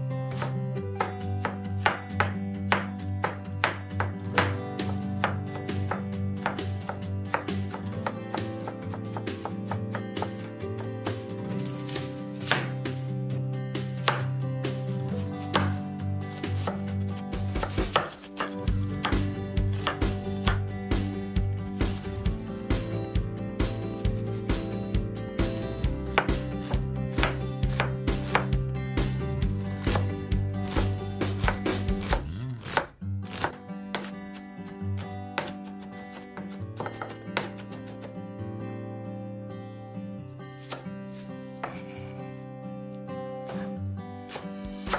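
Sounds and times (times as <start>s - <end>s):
quiet background music: 0.0s - 44.9s
knife chopping on cutting board: 0.3s - 10.5s, 11.7s - 13.0s, 13.9s - 21.1s, 26.1s - 28.6s, 29.8s - 34.2s, 35.4s - 38.1s, 40.6s - 42.2s, 44.3s - 44.9s.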